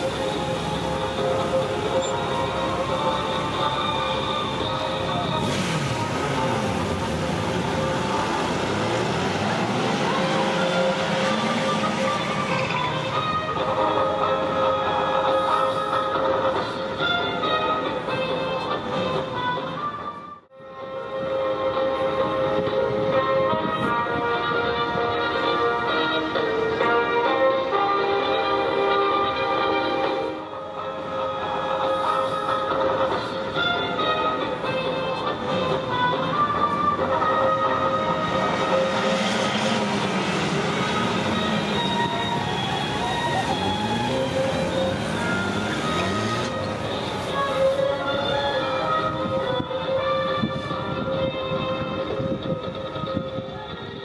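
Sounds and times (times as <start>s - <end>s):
background music: 0.0s - 54.0s
motorcycles passing at speed: 5.0s - 13.5s, 37.4s - 48.4s.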